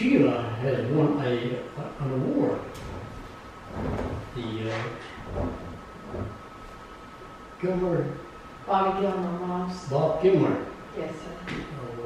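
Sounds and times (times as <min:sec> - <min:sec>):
faint steady high hum: 0:00.0 - 0:12.0
low rumble: 0:01.9 - 0:06.8.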